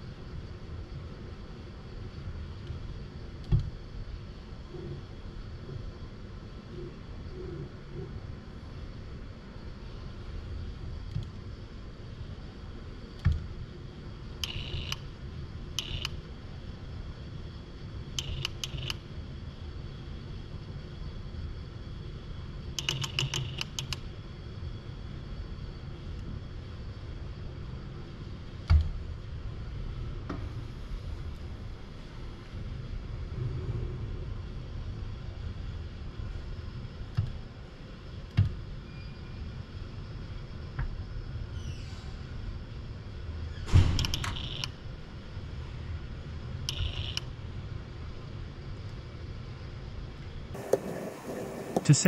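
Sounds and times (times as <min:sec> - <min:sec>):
low hum of machinery: 0:00.0 - 0:52.0.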